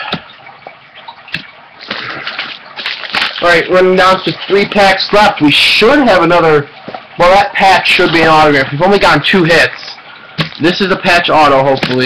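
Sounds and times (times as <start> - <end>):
foil wrappers rustling and crinkling: 1.8 - 5.0.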